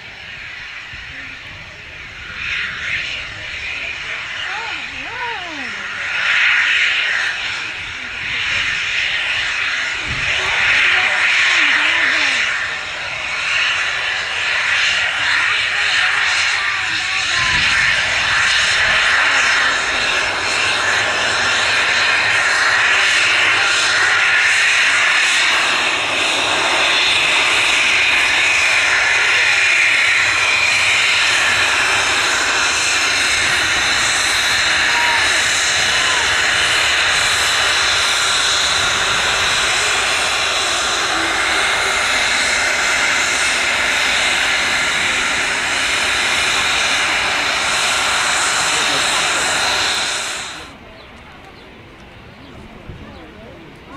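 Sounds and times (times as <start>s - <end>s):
jet engines whining and hissing: 0.0s - 53.9s.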